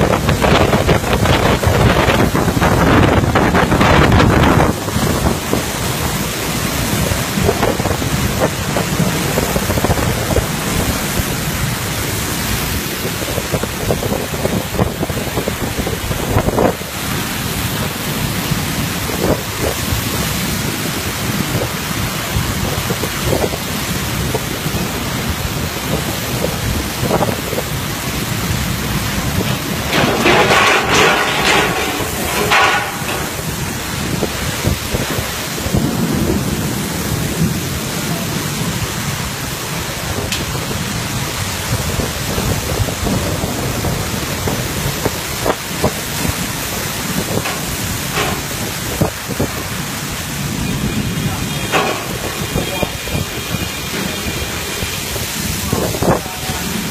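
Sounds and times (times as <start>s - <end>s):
driving rain: 0.0s - 56.9s
wind buffeting microphone: 0.0s - 56.9s.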